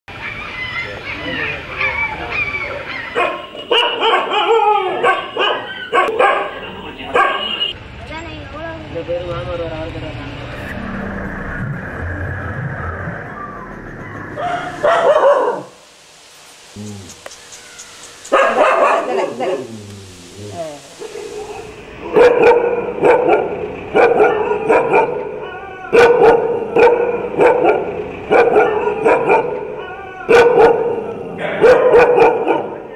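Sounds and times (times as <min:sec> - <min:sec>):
dog barking and yelping: 0:01.7 - 0:07.5, 0:14.0 - 0:15.8, 0:18.3 - 0:19.7, 0:21.0 - 0:32.8.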